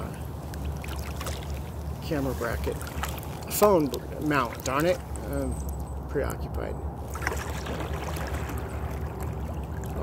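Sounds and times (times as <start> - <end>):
water lapping around kayak hull: 0.0 - 6.1, 6.9 - 10.0
low steady rumble: 0.0 - 10.0.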